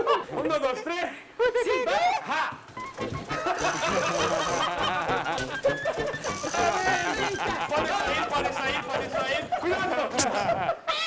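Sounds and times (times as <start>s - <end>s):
background music: 2.8s - 9.5s.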